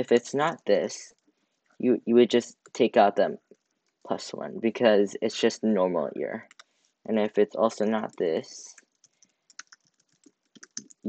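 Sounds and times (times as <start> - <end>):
computer keyboard typing: 6.4 - 6.7, 7.9 - 11.0.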